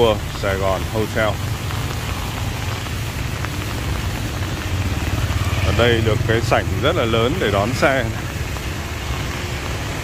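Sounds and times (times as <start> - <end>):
rain falling on paving: 0.0 - 10.0.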